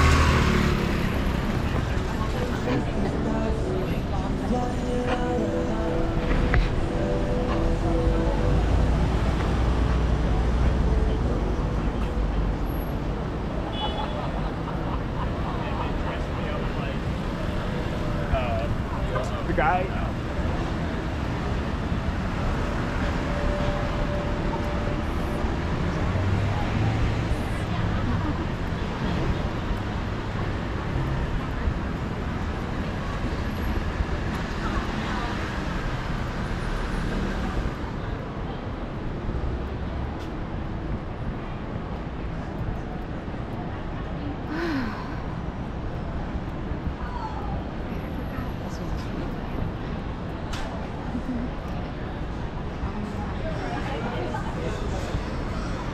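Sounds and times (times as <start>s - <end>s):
passersby talking: 0.0s - 55.9s
passing cars: 0.0s - 55.9s.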